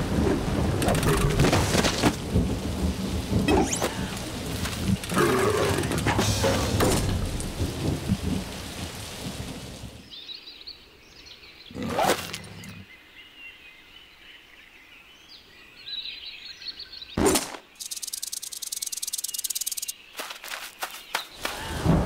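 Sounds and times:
heavy rain with low rumble: 0.0 - 13.0, 21.3 - 22.0
faint bird chirps: 10.1 - 21.8.

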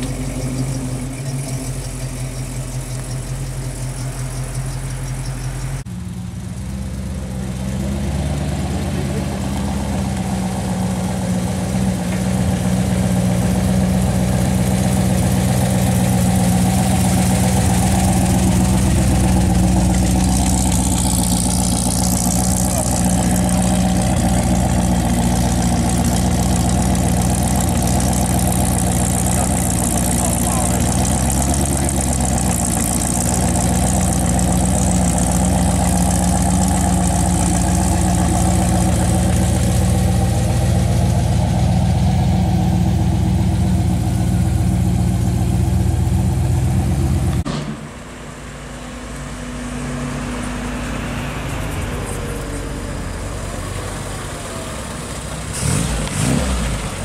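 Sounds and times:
car engine running at low revs: 0.0 - 57.0.

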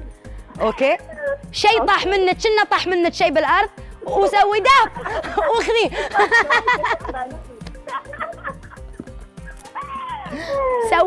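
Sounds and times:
background music with a beat: 0.0 - 11.0
woman laughing: 4.9 - 10.8.

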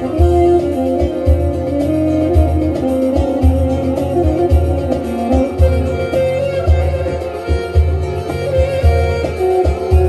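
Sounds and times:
long-necked lute folk melody: 0.0 - 10.0
low regular bass beat: 0.0 - 10.0.

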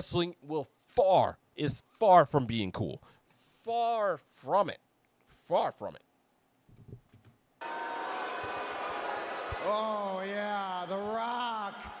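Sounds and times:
wrestling broadcast audio: 7.6 - 12.0.

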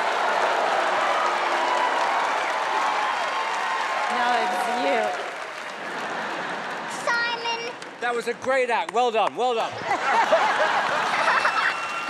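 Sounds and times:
audience applauding: 0.0 - 8.0, 9.8 - 12.0.

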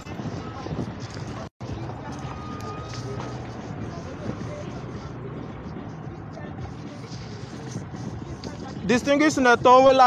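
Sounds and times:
road and wind noise: 0.0 - 10.0
vehicle engine hum: 0.9 - 9.0.

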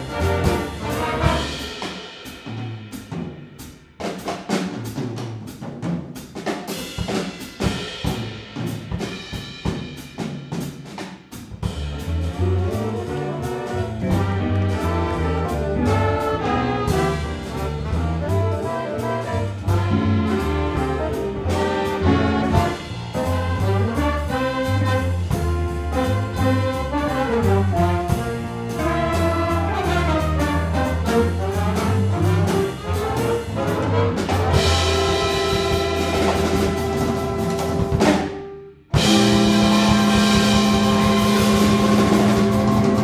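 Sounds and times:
drum kit: 0.0 - 43.0
jazz big band playing: 0.0 - 43.0.

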